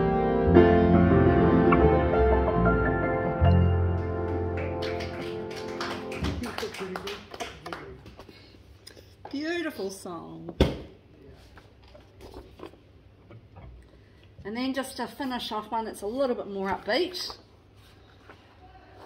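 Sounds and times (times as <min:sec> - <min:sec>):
piano and bass guitar chord: 0:00.0 - 0:06.4.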